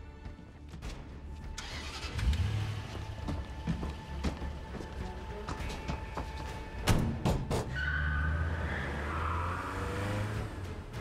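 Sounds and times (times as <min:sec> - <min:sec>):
car engine starting and running: 0:01.4 - 0:05.3, 0:06.8 - 0:11.0.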